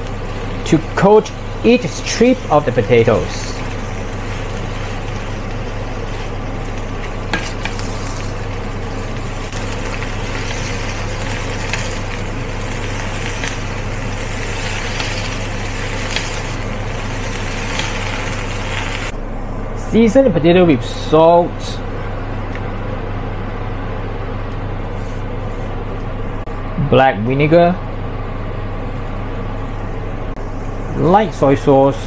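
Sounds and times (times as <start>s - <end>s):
potatoes sizzling in oil: 0.0s - 19.1s
steady low hum: 0.0s - 32.0s.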